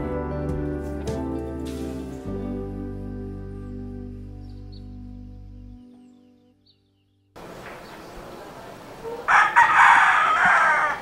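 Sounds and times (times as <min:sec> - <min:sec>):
rooster crowing: 0:09.3 - 0:11.0.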